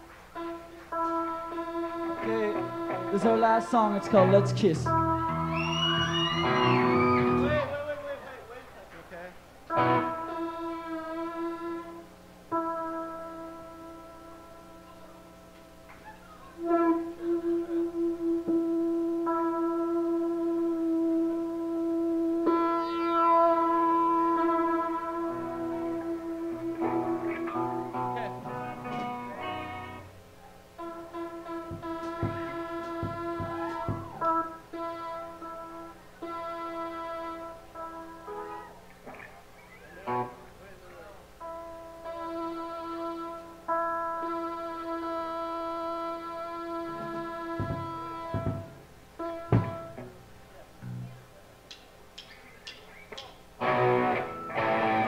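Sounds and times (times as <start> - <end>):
live rock band playing: 0.4 - 7.7, 9.7 - 11.9, 21.4 - 30.1, 30.8 - 38.8, 53.6 - 55.0
sharp drum hits: 31.6 - 34.5, 47.0 - 50.2.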